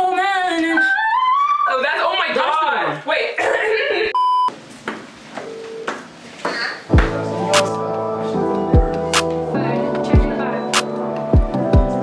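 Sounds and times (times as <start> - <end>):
censor bleep: 4.2 - 4.5.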